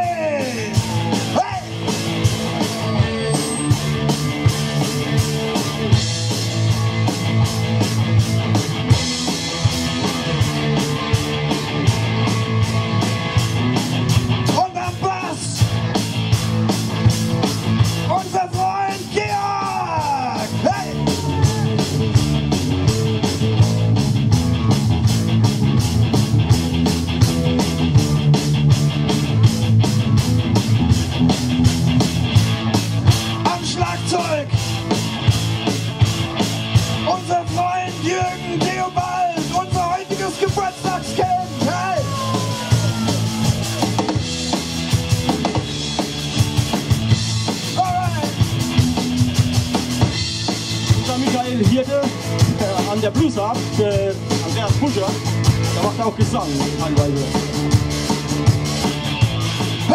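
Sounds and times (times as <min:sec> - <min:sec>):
bass guitar: 0:00.0 - 0:59.9
driving drum beat: 0:00.0 - 0:59.9
electric guitar: 0:00.0 - 0:59.9.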